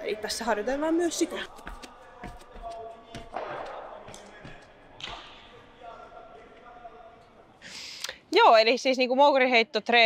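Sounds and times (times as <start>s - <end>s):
feet landing on rubber track: 1.5s - 5.4s.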